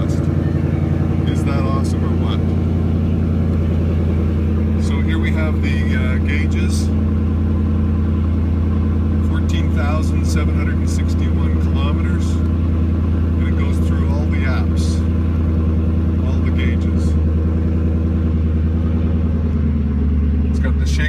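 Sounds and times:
car engine idling: 0.0s - 21.0s.

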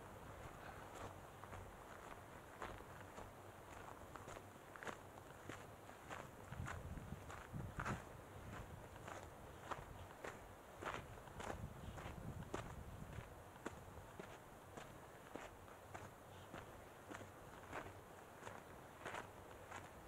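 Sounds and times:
footsteps on dirt trail: 0.0s - 20.0s.

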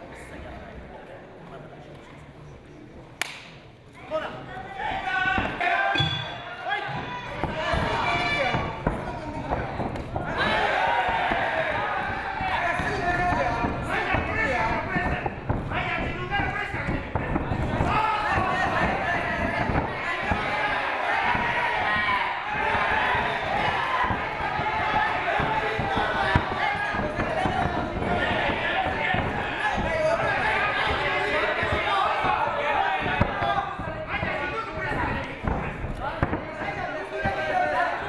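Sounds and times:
dull thuds of fighters: 7.4s - 37.7s.

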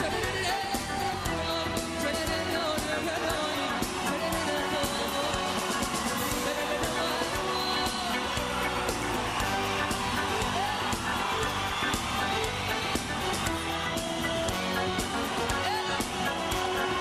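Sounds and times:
man singing into microphone: 0.0s - 5.6s, 6.2s - 8.2s
live band playing: 0.0s - 17.0s.

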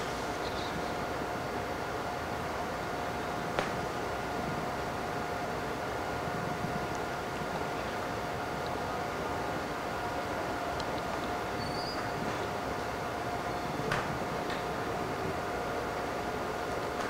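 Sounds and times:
constant whine: 0.0s - 17.0s
mechanical hum and hiss: 0.0s - 17.0s.

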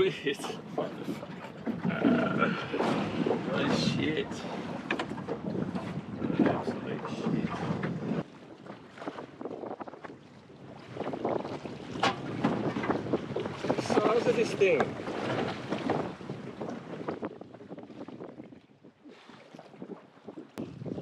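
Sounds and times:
water slapping against boat hull: 0.0s - 21.0s
wind buffeting the microphone: 0.0s - 21.0s.

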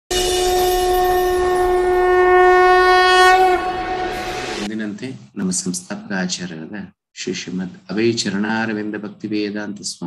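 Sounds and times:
conch shell blown: 0.1s - 4.7s.

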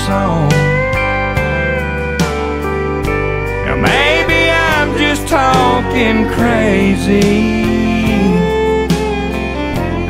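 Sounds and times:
bass: 0.0s - 10.0s
guitar: 0.0s - 10.0s
fiddle: 1.3s - 10.0s.

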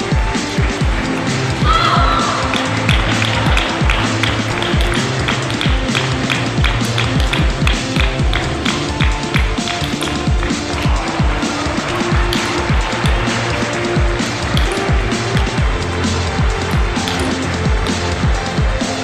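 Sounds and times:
music with driving beat: 0.0s - 19.0s.

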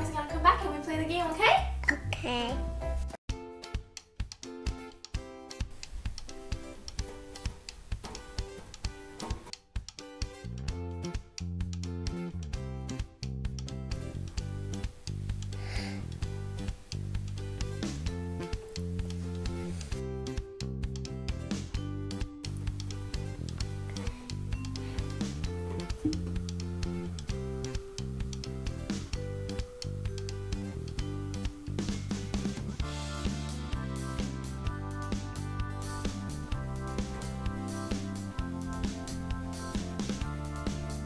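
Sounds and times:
plucked guitar tune: 25.4s - 31.8s.

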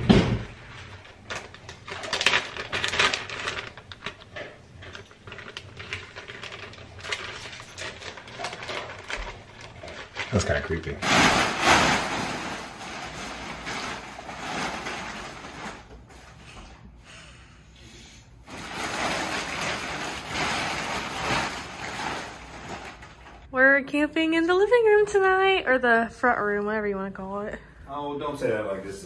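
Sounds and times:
plastic wrapper crinkling: 0.6s - 16.0s, 18.5s - 23.5s
tent fabric rustling and flapping: 11.0s - 15.9s.

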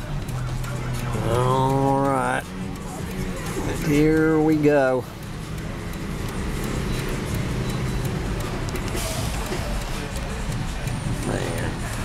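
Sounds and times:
car engine running: 0.0s - 12.0s
road noise inside car: 0.0s - 12.0s.

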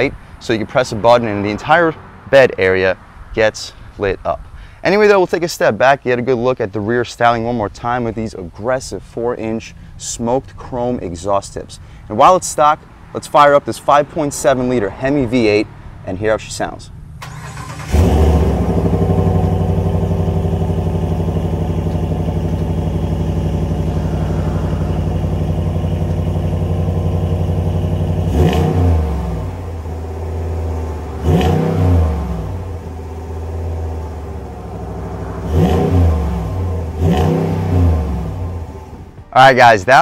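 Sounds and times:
truck engine idling: 17.2s - 28.4s, 29.0s - 37.0s
engine revving: 17.2s - 39.2s.

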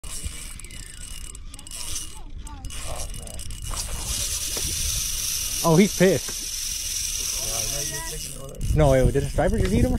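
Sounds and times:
fishing reel spinning: 0.0s - 9.9s
high whine from reel: 0.0s - 9.9s
wind rumble on microphone: 2.4s - 5.6s, 8.0s - 9.9s.

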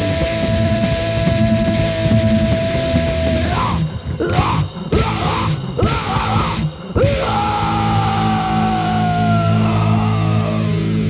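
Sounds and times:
heavy rock music: 0.0s - 11.0s.

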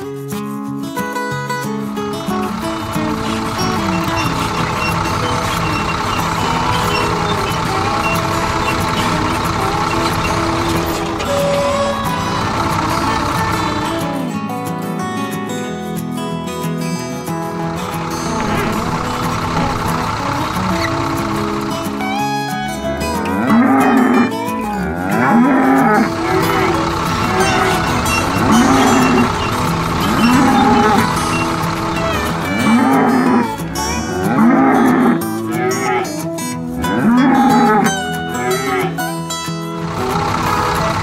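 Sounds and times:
background music: 1.6s - 41.0s
cows mooing: 2.2s - 14.2s, 17.7s - 39.2s, 39.8s - 41.0s.

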